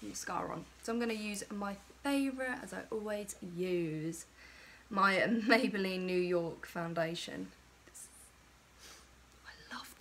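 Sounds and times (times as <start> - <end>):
woman breathing faintly: 4.3 - 4.9.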